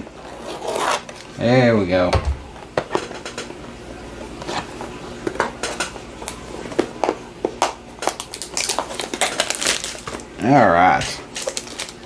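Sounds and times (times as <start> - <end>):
plastic wrap crinkling: 8.0 - 12.0.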